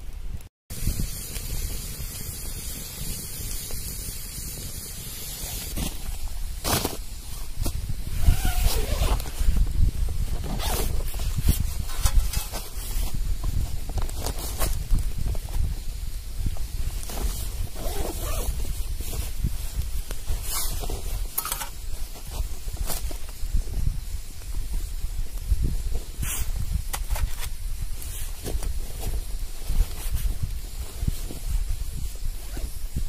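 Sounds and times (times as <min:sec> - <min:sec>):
steady hiss: 0:00.0 - 0:33.0
sleeping pad and tent fabric rustling: 0:05.3 - 0:15.8, 0:16.4 - 0:24.2, 0:24.8 - 0:33.0.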